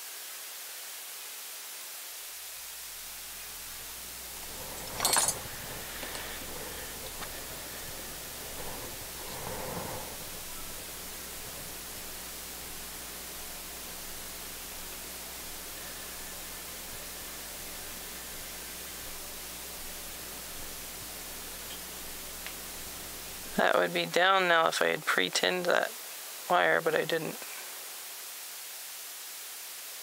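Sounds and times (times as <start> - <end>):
steady hiss: 0.0 - 30.0
low hum: 2.8 - 23.5.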